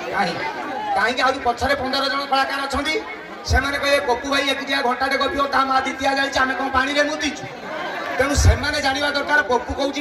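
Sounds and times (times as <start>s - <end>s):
man talking into a microphone: 0.0s - 7.6s, 8.2s - 10.0s.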